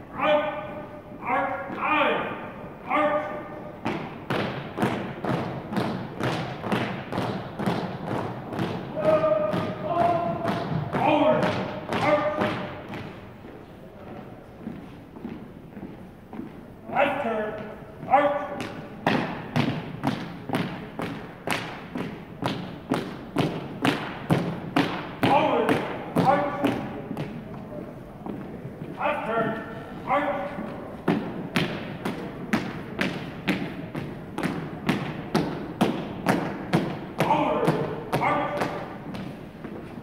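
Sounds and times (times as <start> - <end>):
marching footsteps on hardwood floor: 3.8 - 40.0
person shouting drill calls: 8.9 - 11.4.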